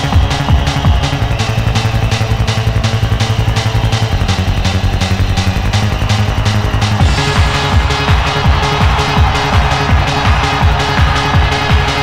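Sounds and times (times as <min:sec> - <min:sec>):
fast hi-hat pattern: 0:00.0 - 0:12.0.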